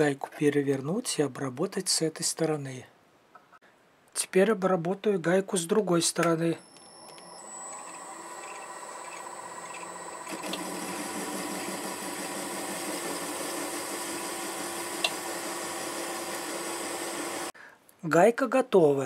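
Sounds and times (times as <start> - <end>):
lathe humming and whining: 6.6 - 17.5.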